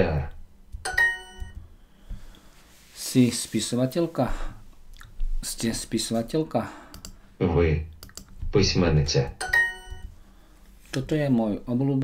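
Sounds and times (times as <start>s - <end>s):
bright ding chime: 0.9s - 1.6s, 9.4s - 10.1s.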